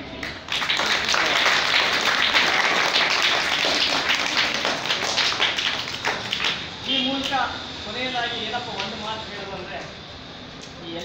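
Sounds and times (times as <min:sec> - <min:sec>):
audience clapping: 0:00.1 - 0:06.8.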